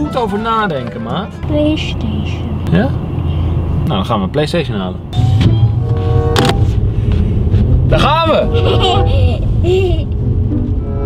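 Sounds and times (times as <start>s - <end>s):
car cabin low rumble: 0.0s - 11.0s.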